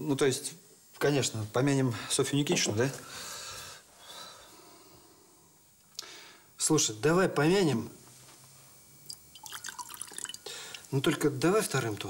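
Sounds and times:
drink pouring into glass: 9.0 - 10.9.

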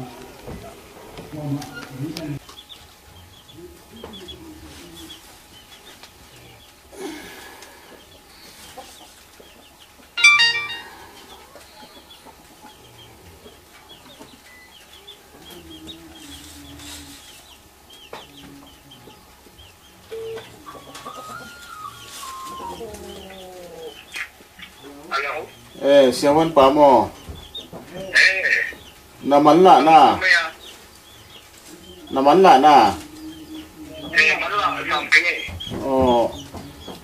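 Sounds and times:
chickens clucking: 0.0 - 37.0
short electronic tune: 10.2 - 11.2
small high chirps: 10.2 - 11.5, 20.1 - 23.9
chicken squawking: 20.0 - 25.8, 28.0 - 29.0, 31.7 - 35.6.

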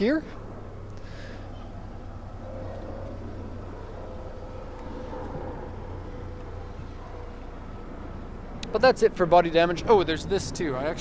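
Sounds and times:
faint steady whine: 0.0 - 11.0
low engine rumble: 0.0 - 11.0.

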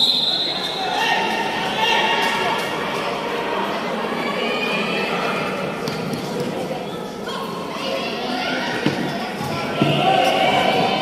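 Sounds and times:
high voices shouting in a hall: 0.0 - 11.0.

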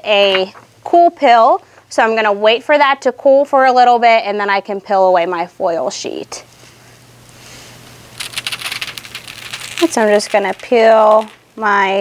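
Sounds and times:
woman's voice: 0.0 - 6.4, 9.8 - 12.0
foil sheet peeling and crackling: 7.5 - 11.7.

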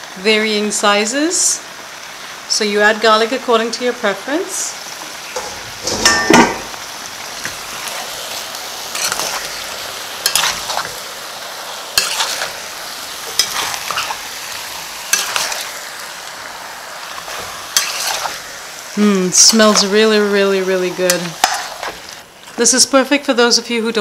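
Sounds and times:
food sizzling in a pot: 0.0 - 24.0
metal spoon scraping a pot: 8.9 - 9.5, 10.2 - 10.9, 12.0 - 12.5, 17.4 - 18.4, 21.4 - 22.0.

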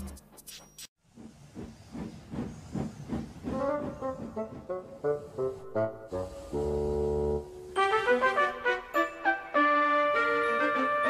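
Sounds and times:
steam locomotive puffing: 1.0 - 7.5
brass theme music: 5.4 - 11.0.

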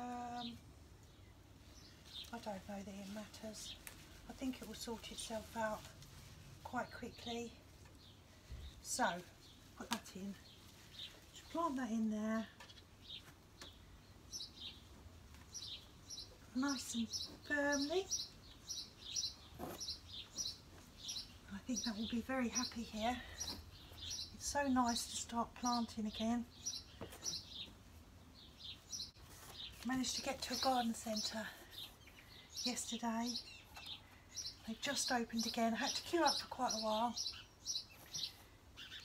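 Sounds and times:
small bird chirping: 15.5 - 27.8, 28.4 - 39.0.

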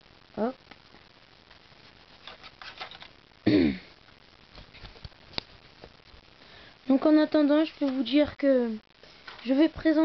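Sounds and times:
person coughing: 3.4 - 3.9.

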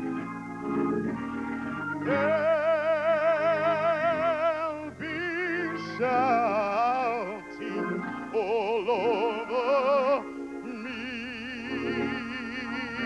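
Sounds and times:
held accompanying chords: 0.0 - 13.0
person singing operatically: 1.9 - 13.0.

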